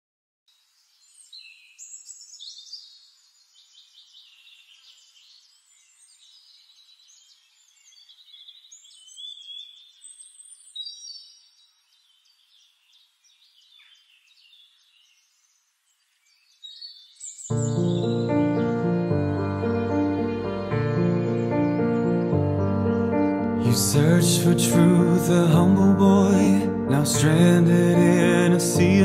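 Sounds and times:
songbirds singing: 0:00.5 - 0:29.0.

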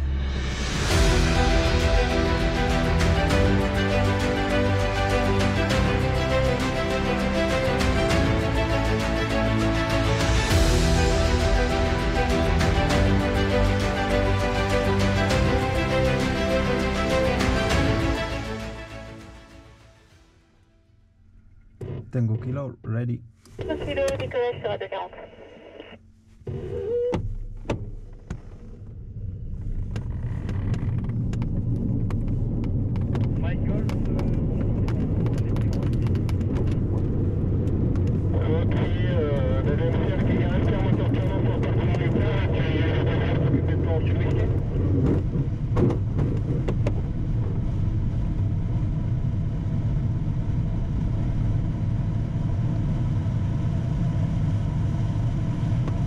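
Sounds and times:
rush and rumble of takeoff roll: 0:00.0 - 0:18.8, 0:27.3 - 0:56.0
radio voice: 0:22.2 - 0:25.9, 0:38.4 - 0:44.5.

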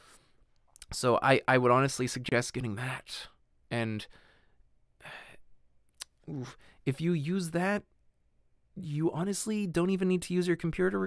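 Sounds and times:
person sighing into microphone: 0:06.3 - 0:06.7.

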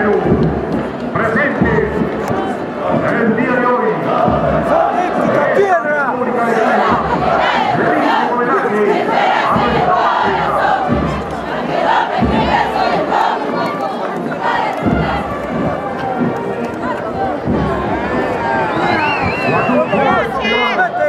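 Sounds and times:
crowd noise: 0:00.0 - 0:21.0
low thumps: 0:09.3 - 0:13.6, 0:14.2 - 0:20.4.

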